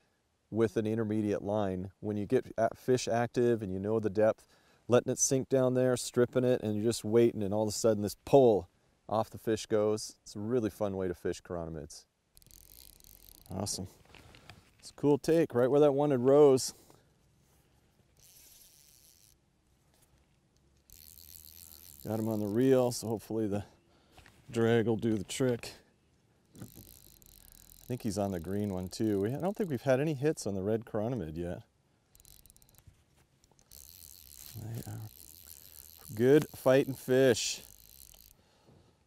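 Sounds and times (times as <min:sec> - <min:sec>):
fly reel clicking: 0:12.4 - 0:14.6, 0:18.1 - 0:19.5, 0:20.4 - 0:23.1, 0:26.4 - 0:29.9, 0:32.0 - 0:38.4.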